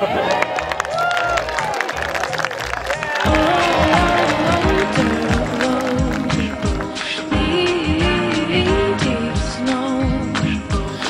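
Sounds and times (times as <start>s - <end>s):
guests clapping and cheering: 0.0s - 7.4s
background music: 0.0s - 11.0s.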